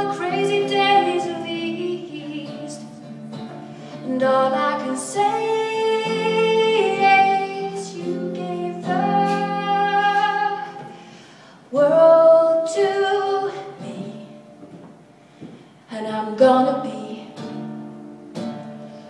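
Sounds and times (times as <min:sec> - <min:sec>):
acoustic guitar: 0:00.0 - 0:19.0
woman singing long held notes: 0:04.0 - 0:11.1.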